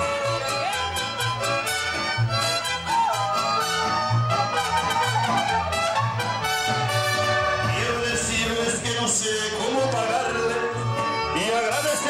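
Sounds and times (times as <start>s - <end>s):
mariachi trumpets and violins: 0.0s - 12.0s.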